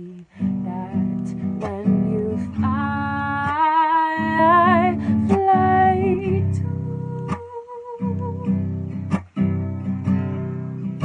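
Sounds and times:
woman singing with vibrato: 0.0s - 8.8s
strummed acoustic guitar: 0.3s - 11.0s.

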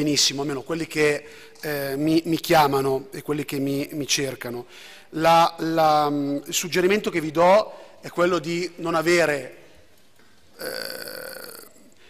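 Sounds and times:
man's raspy hesitation sound: 10.6s - 11.9s.

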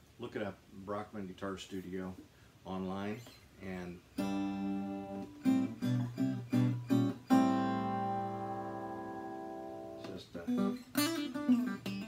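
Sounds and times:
acoustic guitar strummed: 4.1s - 12.0s.

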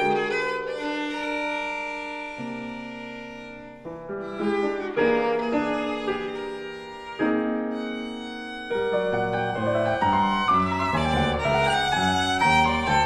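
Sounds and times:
violin and piano duo playing: 0.0s - 13.0s.

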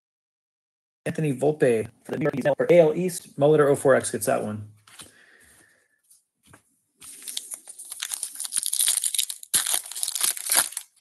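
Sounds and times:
card pack wrapper tearing: 7.0s - 11.0s.

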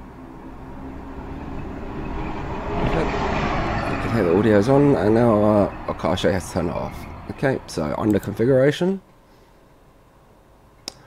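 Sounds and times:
bus engine and road noise: 0.0s - 8.9s.

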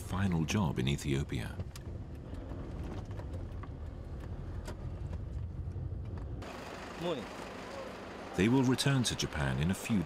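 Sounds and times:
car engine and tyres rumbling: 0.0s - 10.0s.

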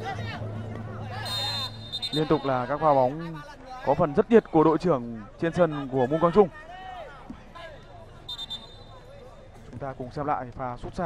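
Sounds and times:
short high whistle blast: 1.2s - 2.6s.

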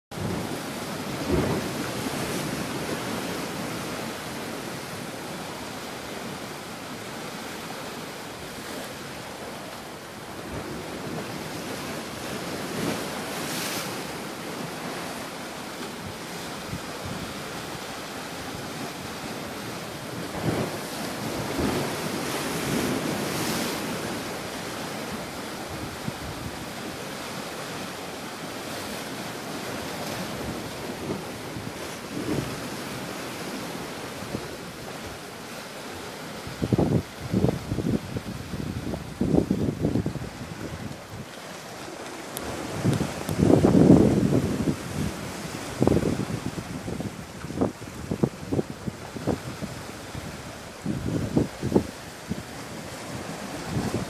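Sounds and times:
sea waves washing against rocks: 0.1s - 54.0s
wind on microphone: 10.3s - 27.8s, 28.6s - 35.3s, 36.3s - 41.5s, 42.4s - 54.0s.

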